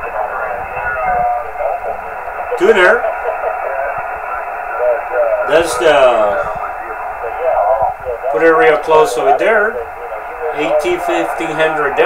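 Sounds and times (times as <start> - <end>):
voice over radio speaker: 0.0 - 12.0.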